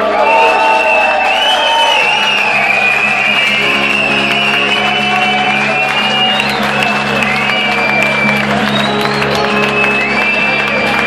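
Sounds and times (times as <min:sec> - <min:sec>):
crowd applause: 0:00.0 - 0:11.0
amplified electric guitars: 0:02.2 - 0:11.0.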